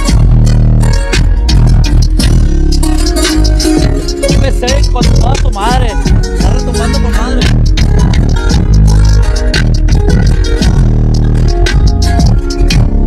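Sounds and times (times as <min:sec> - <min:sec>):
heavy subwoofer bass: 0:00.0 - 0:13.0
song on car audio system: 0:00.0 - 0:13.0.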